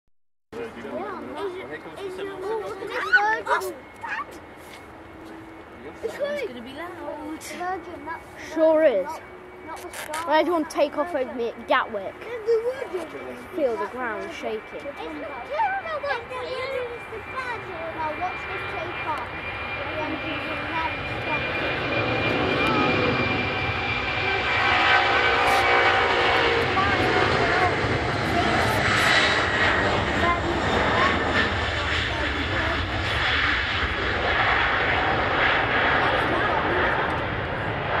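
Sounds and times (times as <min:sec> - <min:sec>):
high jet whine falling in pitch: 0:00.6 - 0:38.0
jet engines roaring at takeoff: 0:00.6 - 0:38.0.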